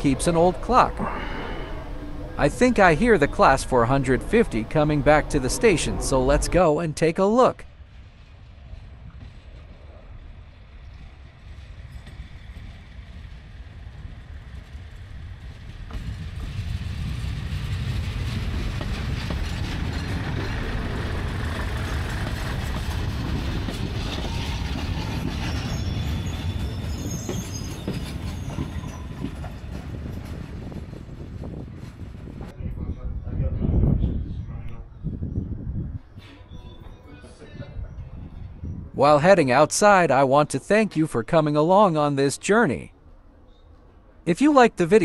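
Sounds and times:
diesel train engine: 0:00.0 - 0:32.5
train wheels on rails: 0:07.7 - 0:32.5
faint high squeals: 0:24.0 - 0:29.6, 0:36.1 - 0:38.7.

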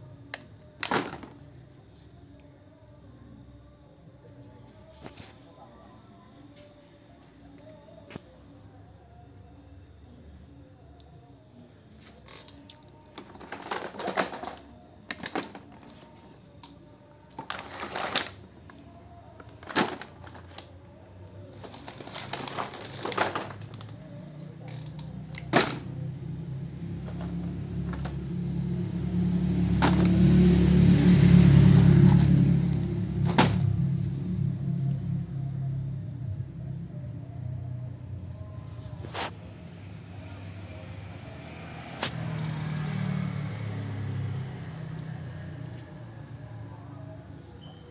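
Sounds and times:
plastic packaging rustling: 0:21.6 - 0:23.9.

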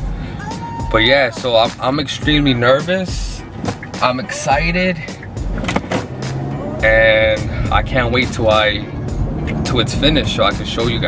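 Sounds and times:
engine and road rumble: 0:00.0 - 0:11.0.

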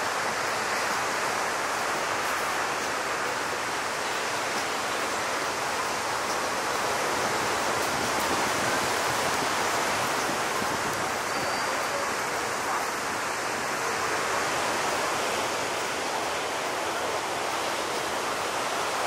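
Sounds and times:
ocean surf breaking: 0:00.0 - 0:19.0.

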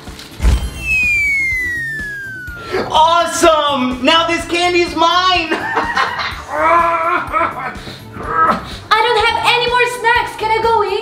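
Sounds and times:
whistle tone sliding down: 0:00.4 - 0:03.4.

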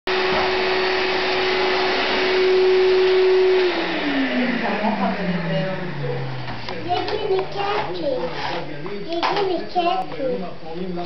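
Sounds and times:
vacuum cleaner running: 0:00.1 - 0:08.8.

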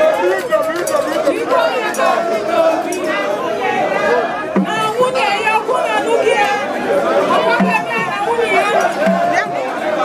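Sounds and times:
large crowd chattering: 0:00.0 - 0:10.0.

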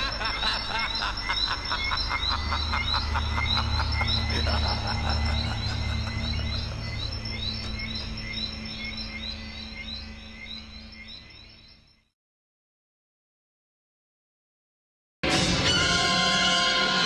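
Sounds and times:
frogs croaking: 0:00.0 - 0:12.1
low rumble: 0:02.4 - 0:10.5.

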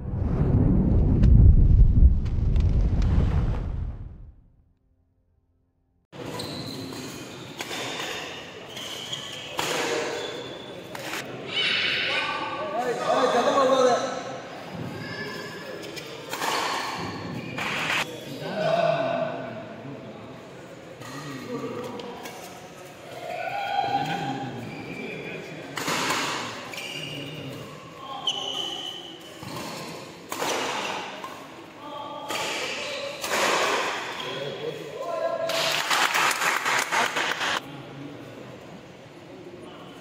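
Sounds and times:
loud shouting voices: 0:23.0 - 0:24.6
racket hitting shuttlecock: 0:29.5 - 0:31.0.

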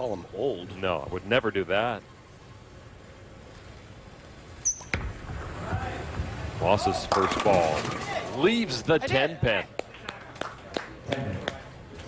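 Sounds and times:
brief high squeak: 0:04.6 - 0:04.9.

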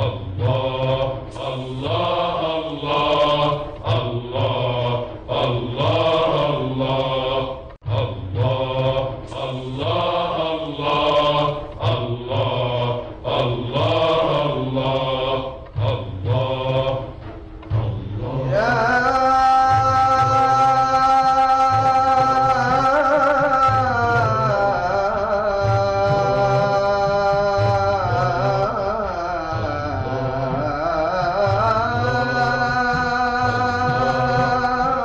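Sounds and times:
men chanting a devotional hymn: 0:00.0 - 0:35.0.

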